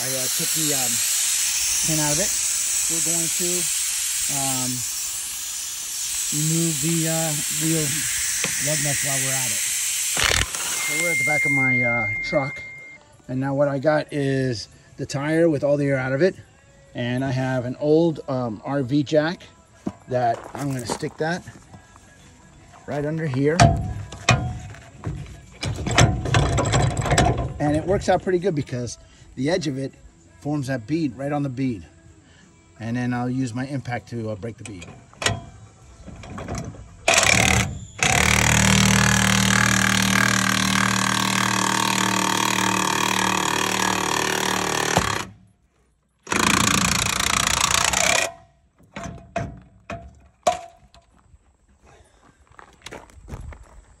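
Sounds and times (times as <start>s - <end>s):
impact wrench hammering: 6.1s - 9.6s, 10.2s - 12.8s, 37.1s - 45.3s, 46.3s - 48.4s
metal jack clanking: 25.6s - 27.6s.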